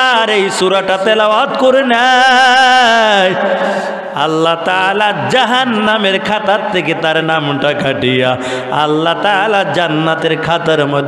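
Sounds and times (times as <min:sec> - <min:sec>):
man chanting melodically: 0:00.0 - 0:11.0.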